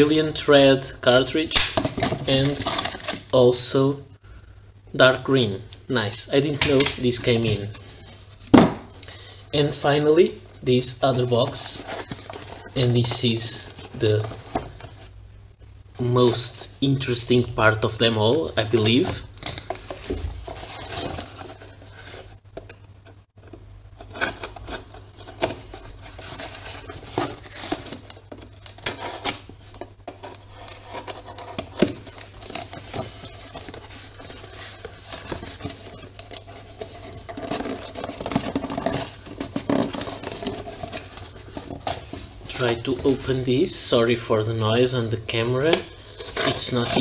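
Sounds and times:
cardboard scraping and rustling: 0:01.8 - 0:03.3, 0:06.5 - 0:08.9, 0:11.0 - 0:15.1, 0:17.9 - 0:22.3, 0:23.4 - 0:43.4, 0:45.8 - 0:47.0.

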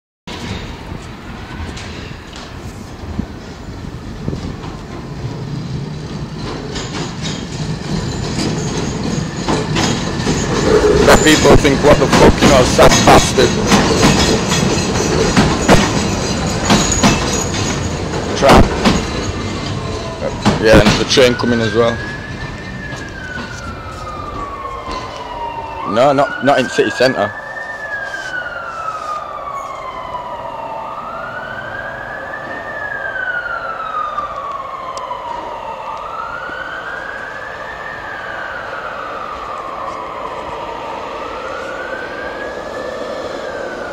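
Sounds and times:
tram running on rails: 0:00.3 - 0:43.9
wheels clicking on track: 0:04.4 - 0:23.7.

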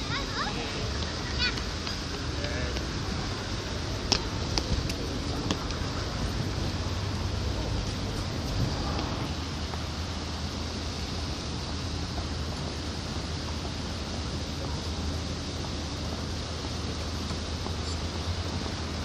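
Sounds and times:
low rumble: 0:03.0 - 0:11.5.

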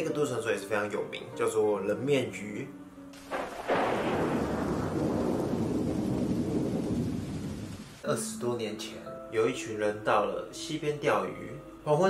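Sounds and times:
rolling thunder rumble: 0:03.2 - 0:08.0.

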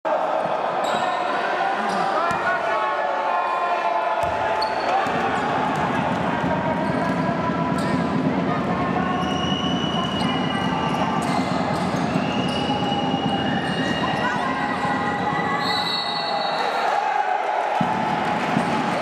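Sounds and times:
echoing chatter and shouts: 0:00.1 - 0:19.0
sneaker squeaks: 0:00.8 - 0:01.2, 0:04.2 - 0:05.0, 0:09.1 - 0:16.8.

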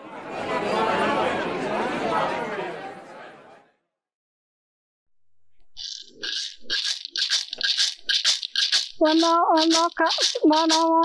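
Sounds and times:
hand rattle shaken: 0:05.8 - 0:11.0.

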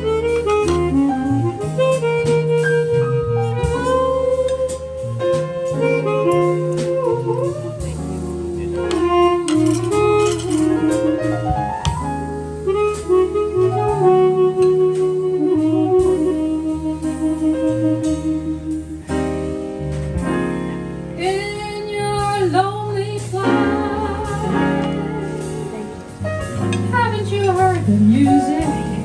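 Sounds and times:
bass: 0:00.0 - 0:29.0
drums with cymbals: 0:00.0 - 0:29.0
jazz harmonica melody: 0:00.0 - 0:29.0
piano: 0:00.0 - 0:29.0.

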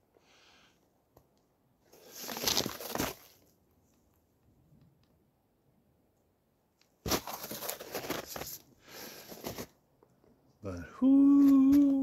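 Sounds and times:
rustling through dry brush and snow: 0:01.9 - 0:03.5
man's voice: 0:10.6 - 0:12.0.

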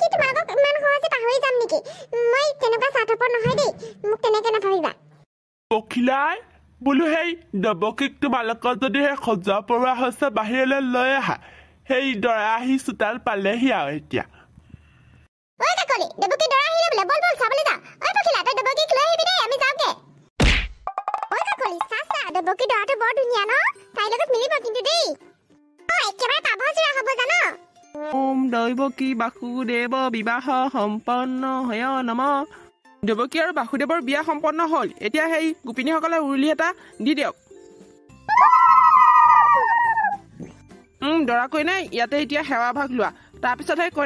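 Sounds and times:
faint background music: 0:00.0 - 0:14.4, 0:15.6 - 0:20.2, 0:21.3 - 0:44.0
whack sound effect with thud: 0:20.4 - 0:20.9
long howl: 0:38.3 - 0:40.2.

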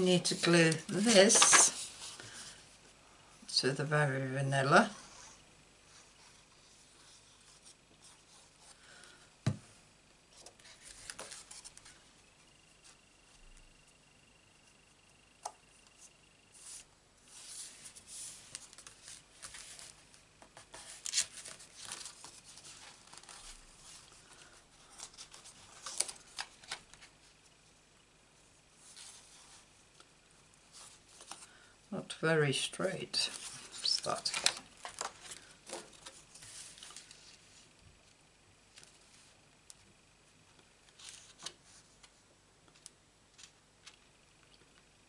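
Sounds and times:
paper rustling and sliding: 0:00.4 - 0:02.6, 0:10.3 - 0:12.0, 0:16.0 - 0:27.2, 0:33.2 - 0:37.7.

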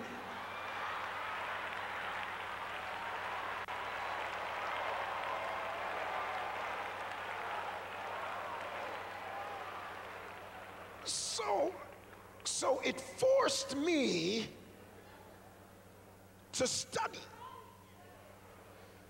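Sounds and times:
crowd applauding: 0:00.0 - 0:13.0.

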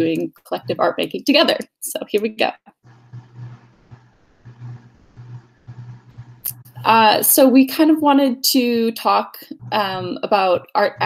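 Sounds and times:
intermittent low hum: 0:02.9 - 0:08.2, 0:09.1 - 0:11.0.

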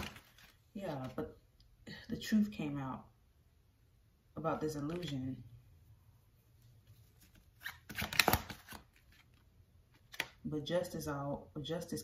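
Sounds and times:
cards rustling and snapping: 0:00.0 - 0:01.2, 0:06.9 - 0:10.4.

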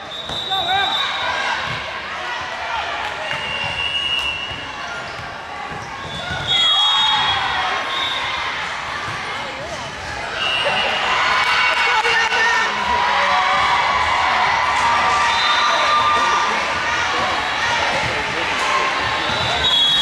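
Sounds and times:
voices echoing: 0:00.0 - 0:20.0
sneakers squeaking on court: 0:03.4 - 0:07.4.

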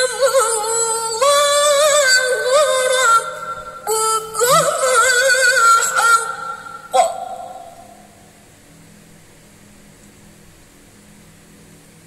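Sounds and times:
woman reciting melodically: 0:00.0 - 0:08.3
faint low hum: 0:00.0 - 0:12.0.

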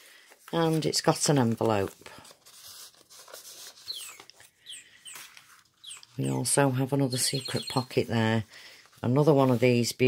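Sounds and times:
paper pages rustling: 0:00.0 - 0:10.0
bird chirps: 0:03.8 - 0:06.4, 0:07.2 - 0:08.0.

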